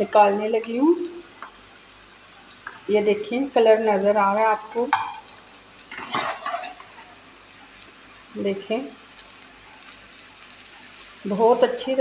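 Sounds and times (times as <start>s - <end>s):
oil sizzling in frying pan: 0.0s - 12.0s.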